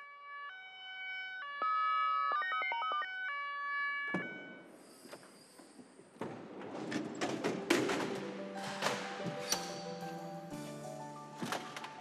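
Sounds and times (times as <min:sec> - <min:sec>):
ambulance two-tone siren: 0:00.0 - 0:04.8.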